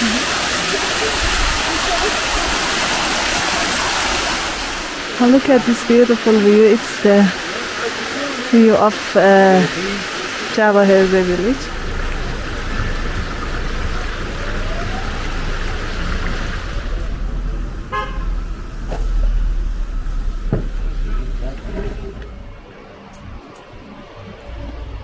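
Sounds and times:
steady low rumble: 10.1s - 25.0s
vehicle horn toot: 17.9s - 18.4s.

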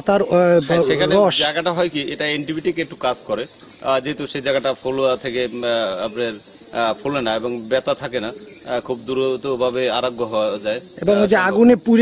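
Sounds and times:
high-pitched insect chorus: 0.0s - 12.0s
man talking: 0.6s - 12.0s.

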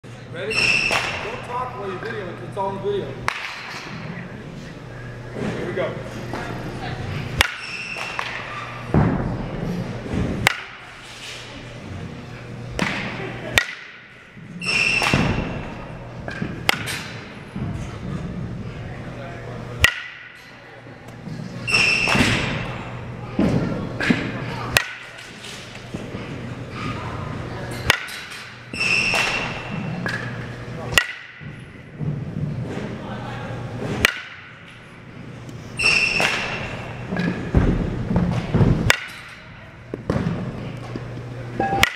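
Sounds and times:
steady low hum: 0.0s - 35.8s
bat hitting balls: 3.2s - 4.0s, 7.4s - 9.2s, 10.2s - 10.8s, 12.8s - 14.1s, 14.7s - 17.3s, 19.8s - 20.4s, 24.0s - 25.2s, 27.8s - 31.6s, 34.0s - 34.6s, 38.8s - 39.4s, 41.6s - 41.9s.

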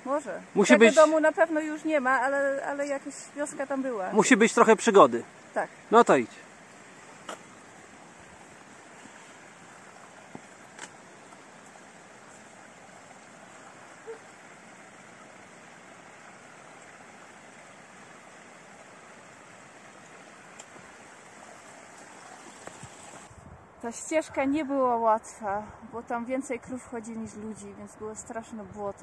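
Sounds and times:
mountain stream rushing: 0.0s - 23.3s
faint clicks: 20.5s - 20.8s.

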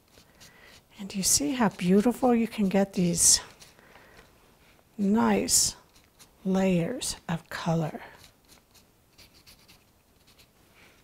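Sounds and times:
gloved fingertips rubbing clay: 0.0s - 3.8s.

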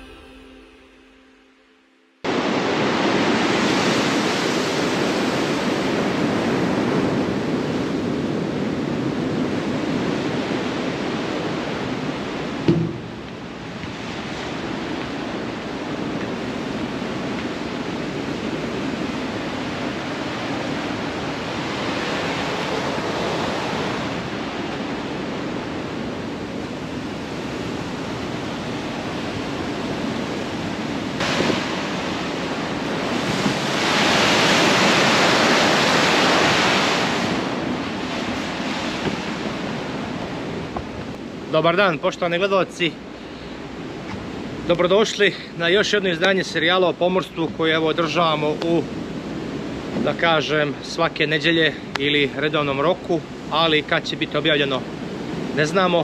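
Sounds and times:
sea and wind rushing: 2.2s - 56.0s
brief knock: 12.7s - 13.1s.

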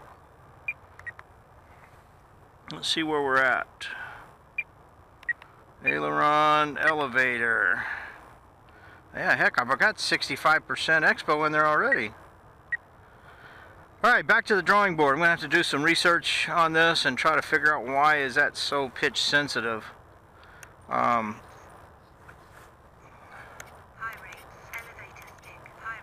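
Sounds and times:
radio transmitter clicks and blips: 0.1s - 1.3s, 2.6s - 3.6s, 4.6s - 6.1s, 10.1s - 12.9s, 20.5s - 22.5s, 23.5s - 26.0s.

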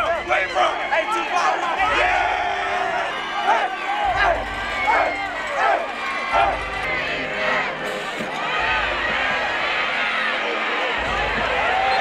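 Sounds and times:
crowd noise: 0.0s - 12.0s
young men shouting and chanting: 0.0s - 12.0s.

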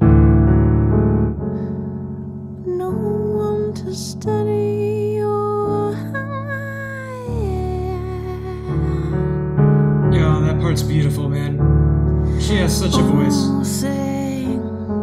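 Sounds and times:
low piano chords: 0.0s - 15.0s
woman singing long notes: 2.6s - 9.1s, 13.0s - 14.7s.

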